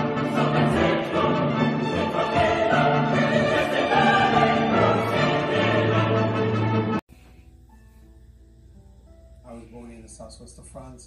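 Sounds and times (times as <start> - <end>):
choir singing: 0.0 - 7.0
symphony orchestra playing: 0.0 - 7.0.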